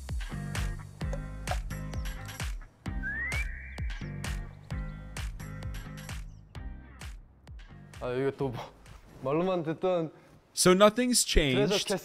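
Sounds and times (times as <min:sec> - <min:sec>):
upbeat music with drum beat: 0:00.0 - 0:09.0
rising whistle-like slide: 0:03.0 - 0:04.1.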